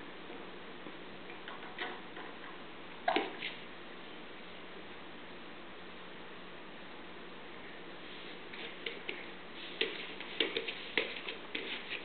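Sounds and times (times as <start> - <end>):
baby crawling on foam mat: 8.0 - 12.0.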